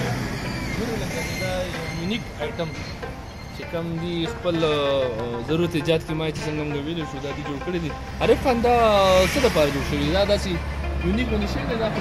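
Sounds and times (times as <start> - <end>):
motor vehicle running: 0.0 - 12.0.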